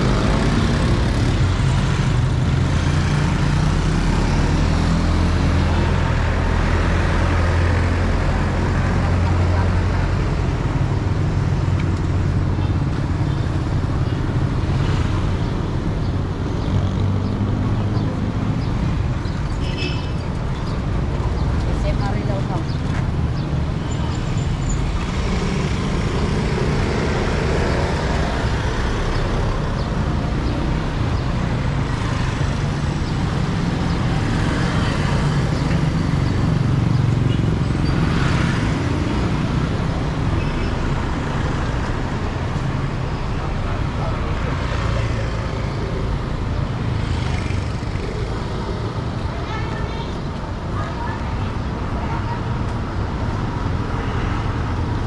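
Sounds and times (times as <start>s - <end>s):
passing motorcycles and cars: 0.0s - 55.0s.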